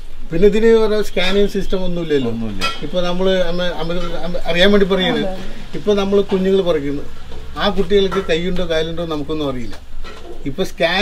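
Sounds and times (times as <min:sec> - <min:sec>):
man talking: 0:00.3 - 0:09.8.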